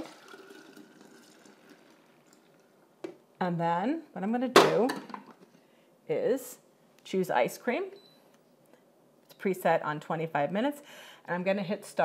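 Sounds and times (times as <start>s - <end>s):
thick liquid pouring: 0.0s - 2.8s.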